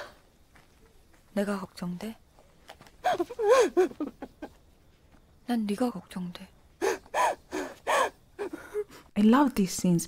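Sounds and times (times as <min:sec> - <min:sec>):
young woman crying: 0:03.0 - 0:04.5, 0:06.8 - 0:09.0.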